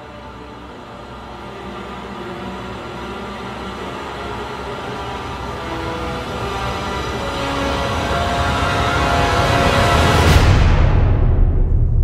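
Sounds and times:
orchestral sustained chords: 0:00.0 - 0:10.7.

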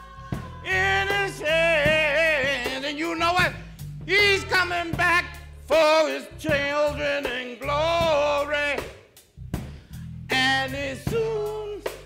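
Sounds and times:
drum strokes: 0:00.1 - 0:12.0.

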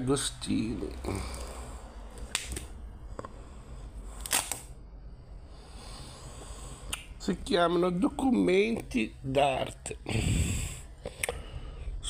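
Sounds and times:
book pages turning: 0:04.2 - 0:04.7.

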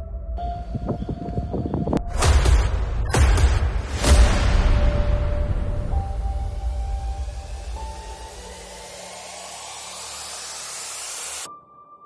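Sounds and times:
hiss of noise: 0:07.3 - 0:11.5.

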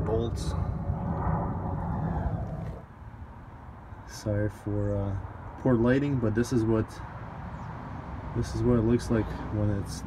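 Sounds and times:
wind buffeting microphone: 0:00.0 - 0:02.9.

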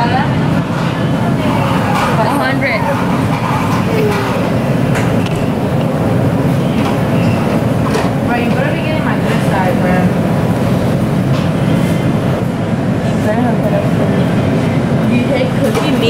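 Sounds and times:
faint voices: 0:00.0 - 0:11.3
kitchen rumbling drone: 0:00.0 - 0:16.0.

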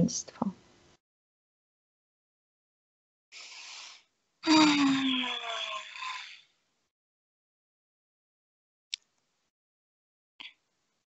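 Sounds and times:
person sighing: 0:03.4 - 0:06.4.

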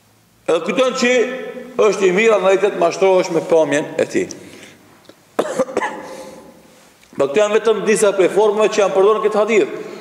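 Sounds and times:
man coughing: 0:05.4 - 0:06.6.

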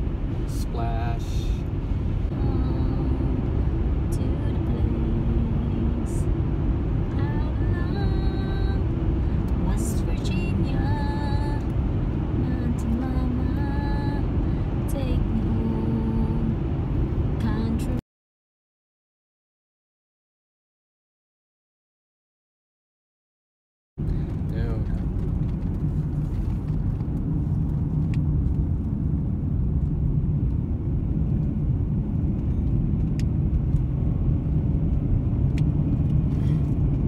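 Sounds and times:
car cabin road rumble: 0:00.0 - 0:18.0, 0:24.0 - 0:37.0.

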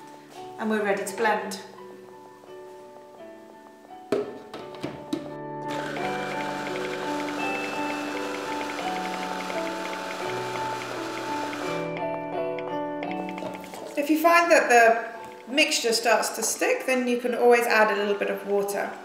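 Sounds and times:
background music: 0:00.0 - 0:19.0
food processor blending: 0:05.7 - 0:11.9.

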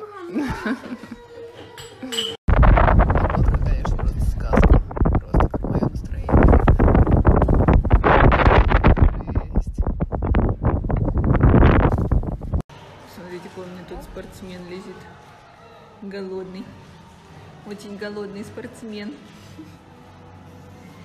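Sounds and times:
wind buffeting a microphone: 0:02.5 - 0:12.7.

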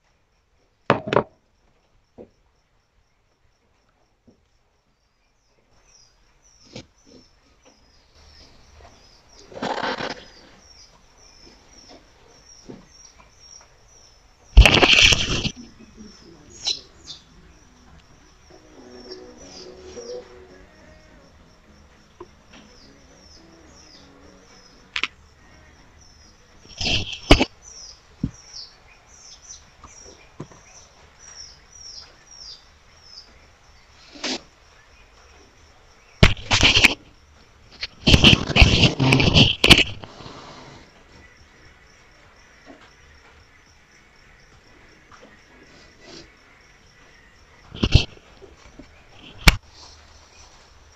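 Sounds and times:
faint high chirps: 0:10.2 - 0:33.4
loud crackling noise burst: 0:14.6 - 0:15.7, 0:36.2 - 0:37.0, 0:37.8 - 0:40.8.

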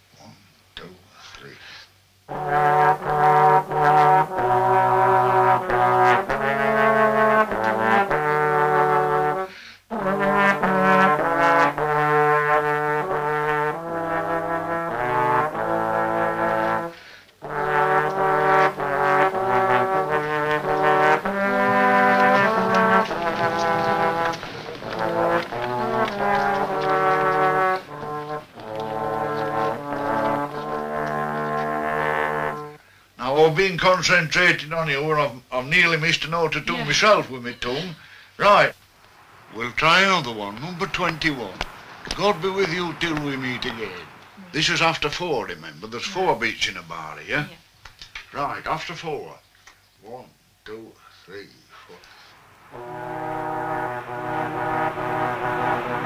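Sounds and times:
trombones playing a hymn: 0:02.2 - 0:33.2, 0:39.3 - 0:46.7, 0:52.1 - 0:56.0.

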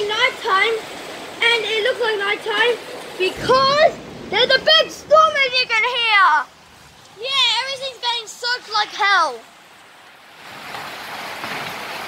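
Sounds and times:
heavy rain pouring: 0:00.0 - 0:10.0.

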